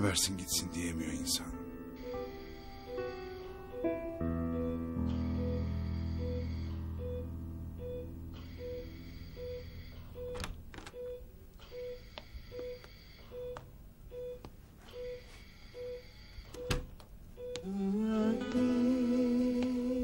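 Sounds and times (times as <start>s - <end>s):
heart monitor beeping: 5.1s - 17.7s.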